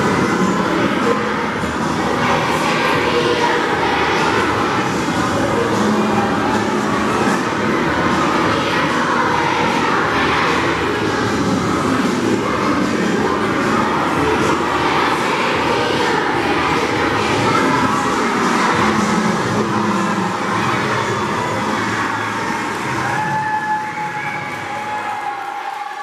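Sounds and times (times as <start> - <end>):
children singing a carol: 0.0 - 23.4.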